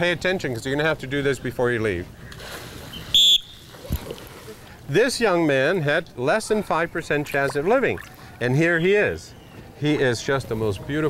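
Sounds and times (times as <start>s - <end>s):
shrill whistle blast: 3.1s - 3.6s
splash into water: 3.6s - 4.6s.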